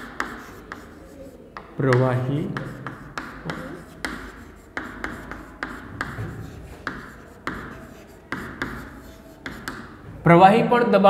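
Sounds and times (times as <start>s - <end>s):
chalk scratching on chalkboard: 0.0s - 10.0s
chalk tapping on board: 0.0s - 10.0s.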